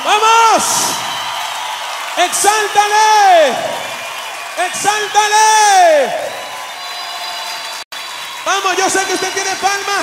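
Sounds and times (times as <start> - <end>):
applause: 0.0 - 10.0
crowd noise: 0.0 - 10.0.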